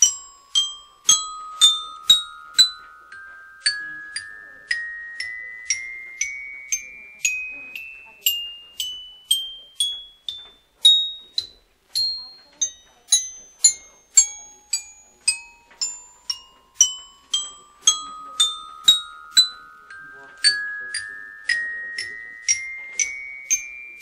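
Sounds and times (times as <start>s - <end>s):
timer chime notes: 0.0s - 24.0s.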